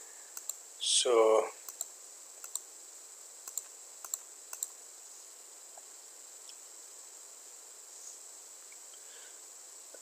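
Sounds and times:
high-pitched hiss: 0.0 - 10.0.

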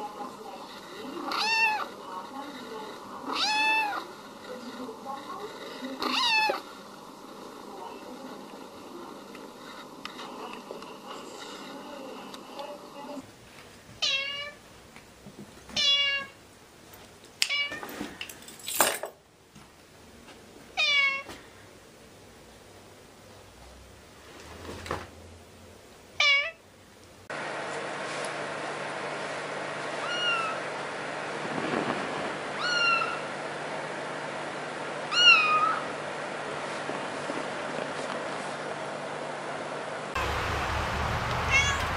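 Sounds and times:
kitten meowing: 1.3 - 1.9, 3.3 - 4.0, 6.1 - 6.6, 14.0 - 14.6, 15.8 - 16.3, 20.8 - 21.3, 26.2 - 26.6, 30.0 - 30.6, 32.6 - 33.2, 35.1 - 35.8, 41.5 - 41.9.

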